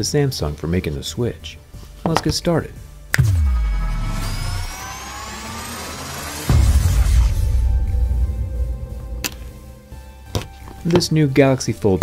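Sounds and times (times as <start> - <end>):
synthetic riser tones: 3.2 - 8.8.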